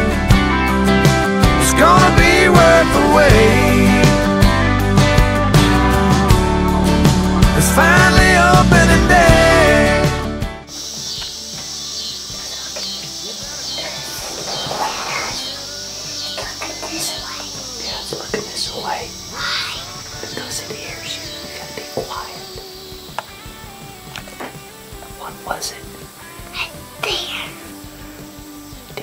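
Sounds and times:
faint background music: 0.0s - 29.0s
whispering voices: 12.4s - 15.5s, 16.4s - 22.6s, 25.2s - 25.9s.

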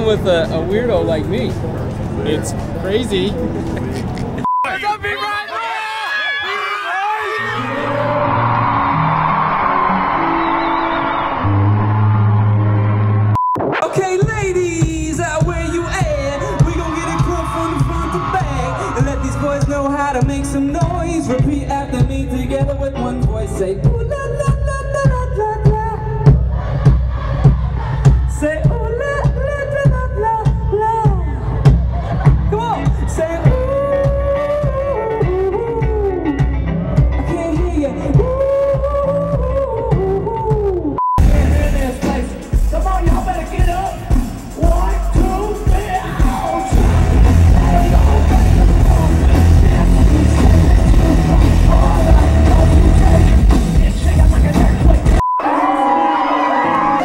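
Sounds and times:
man singing: 13.8s - 26.3s, 32.5s - 55.6s.

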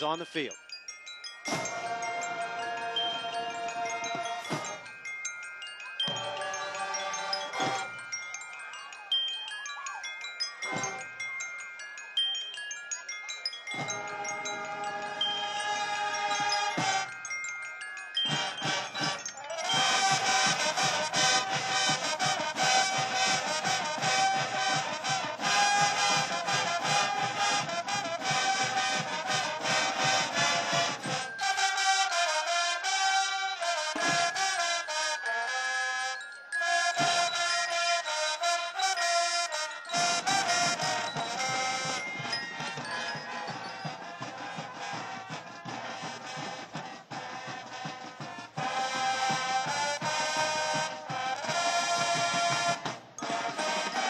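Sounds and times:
marching bells chiming: 0.0s - 54.0s
marching band brass: 1.5s - 4.9s, 6.1s - 8.0s, 13.7s - 17.4s, 18.3s - 54.0s.

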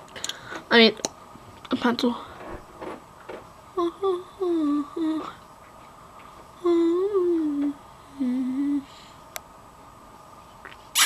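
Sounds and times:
girl humming: 3.8s - 5.4s, 6.6s - 8.9s.

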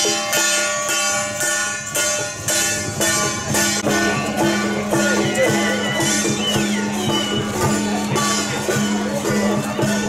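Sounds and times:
drum: 0.0s - 10.0s.

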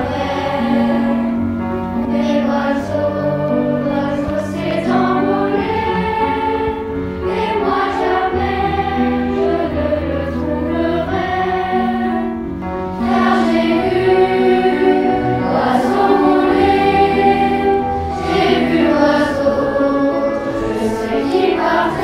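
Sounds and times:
children's choir singing: 0.0s - 22.0s
orchestral accompaniment: 0.0s - 22.0s.

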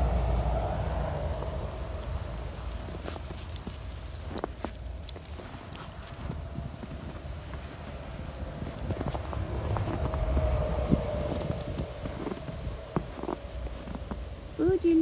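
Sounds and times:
wind rumble on microphone: 0.0s - 15.0s
footsteps crunching in snow: 2.6s - 14.6s.

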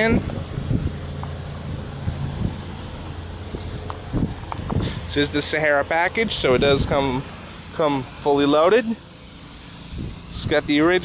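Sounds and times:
wind on microphone: 0.0s - 5.1s, 9.8s - 10.8s
steady low hum: 0.0s - 11.0s.

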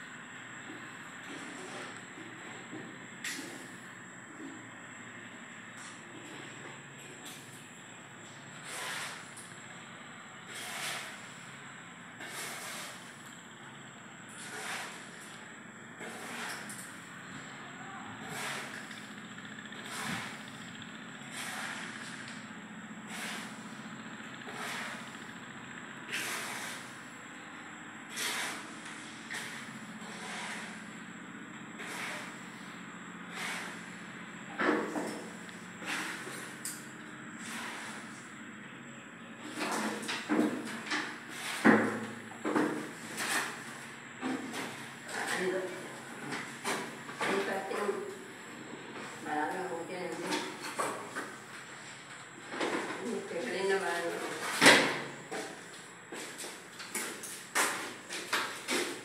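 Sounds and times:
voices talking: 53.0s - 54.4s.

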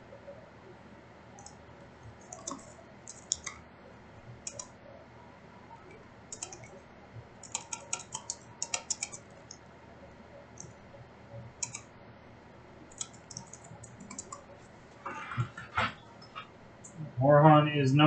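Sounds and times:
computer keyboard typing: 1.4s - 3.6s, 4.2s - 4.8s, 5.7s - 6.8s, 7.4s - 9.6s, 10.4s - 10.8s, 11.4s - 11.9s, 12.8s - 14.6s.

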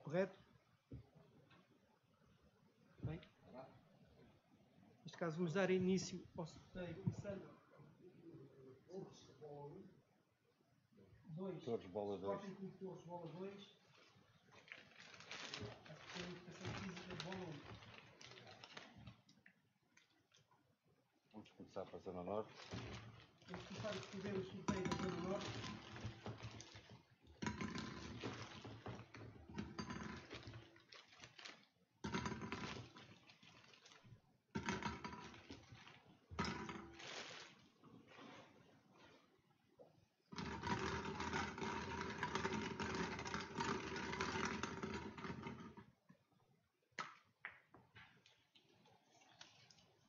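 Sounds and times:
plastic balls rattling in glass bowl: 12.0s - 19.3s, 21.6s - 37.7s, 40.3s - 46.0s.

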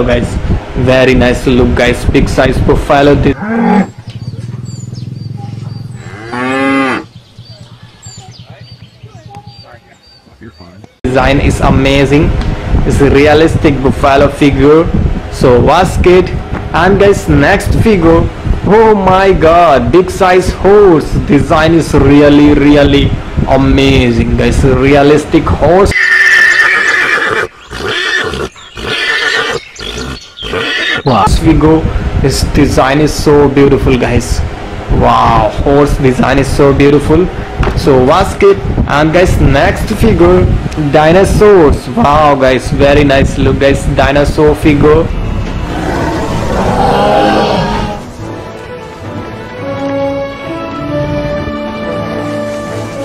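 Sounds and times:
horse neighing: 3.3s - 4.0s, 25.9s - 31.2s, 45.5s - 48.1s
water buffalo lowing: 3.3s - 10.1s, 25.9s - 31.1s, 45.2s - 48.2s.

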